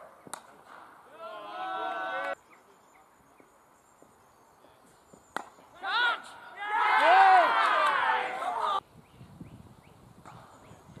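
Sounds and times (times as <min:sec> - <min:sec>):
players shouting: 0:01.0 - 0:02.4, 0:05.6 - 0:08.8
cricket bat striking ball: 0:05.3 - 0:05.7.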